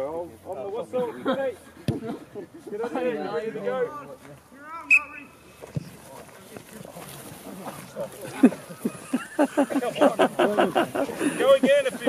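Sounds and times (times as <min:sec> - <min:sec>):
players scuffling on grass: 0:00.0 - 0:12.0
referee's whistle blast: 0:04.8 - 0:05.4.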